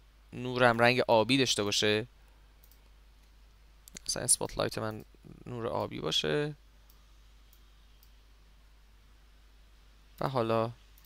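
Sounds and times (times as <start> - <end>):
low steady hum: 0.0 - 11.0
computer mouse clicks: 2.6 - 5.1, 6.8 - 8.2.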